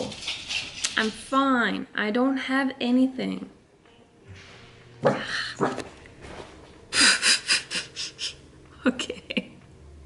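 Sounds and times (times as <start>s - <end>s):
woman's stifled laughter: 6.9s - 9.6s.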